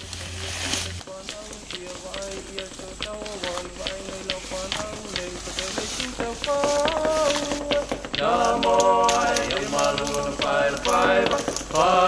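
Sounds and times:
song with sung melody: 0:00.9 - 0:12.0.

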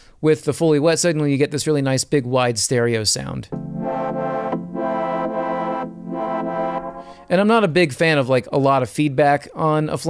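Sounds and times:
synth pad sustained chords: 0:03.5 - 0:07.3.

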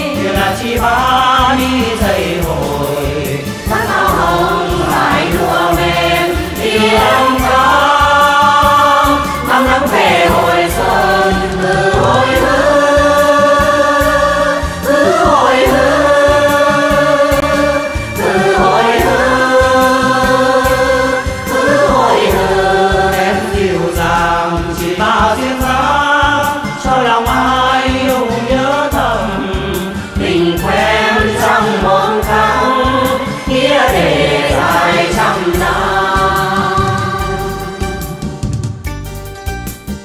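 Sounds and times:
chorus singing folk song: 0:00.0 - 0:38.6
instrumental backing with beat: 0:00.0 - 0:40.0.

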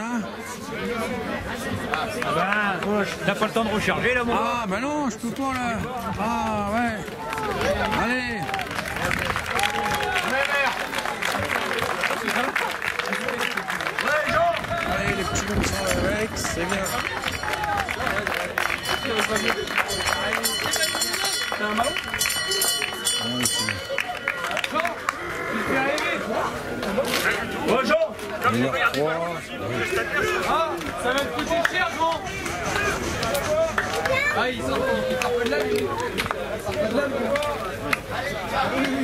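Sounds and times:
voices cheering and chattering: 0:00.0 - 0:39.0
people clapping: 0:01.7 - 0:39.0.

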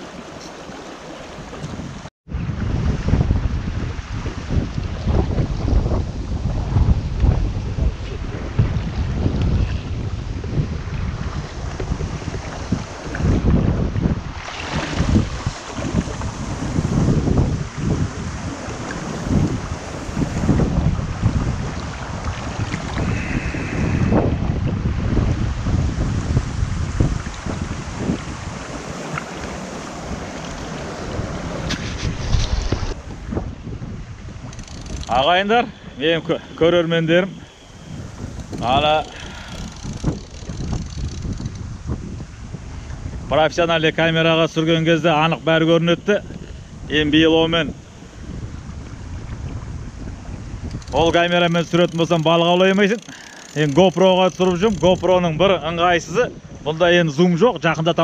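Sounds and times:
wind buffeting microphone: 0:00.0 - 0:58.0
river rushing over stones: 0:25.9 - 0:33.3.

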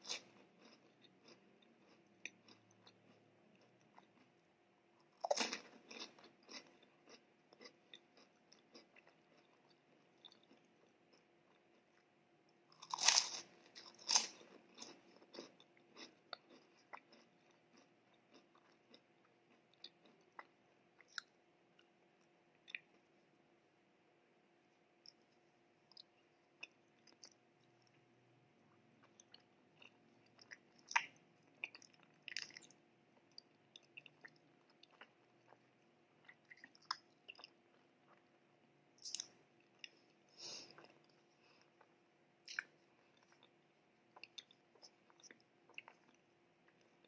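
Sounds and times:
biting and chewing mouth sounds: 0:00.1 - 0:04.4
crunchy snack being bitten: 0:05.1 - 0:11.8, 0:12.7 - 0:21.3.

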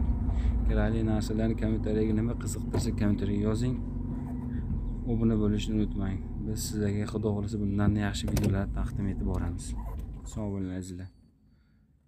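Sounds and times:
car engine idling: 0:00.0 - 0:10.6
man's voice: 0:05.0 - 0:11.0.

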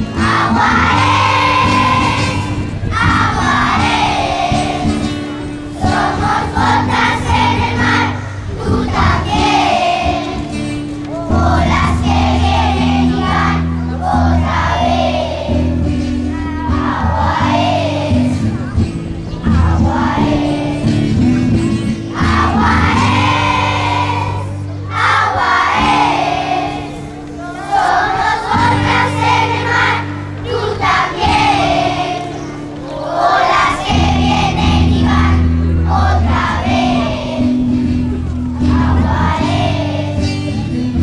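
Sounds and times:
children's choir singing: 0:00.0 - 0:41.0
held accompaniment notes: 0:00.0 - 0:41.0.

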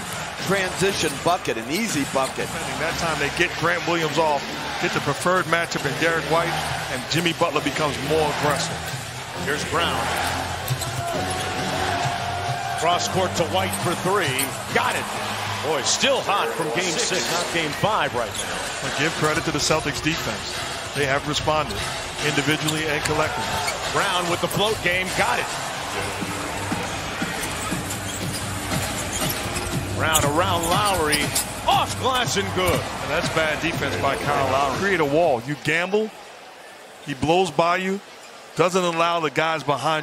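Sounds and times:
arena crowd din: 0:00.0 - 0:40.0.

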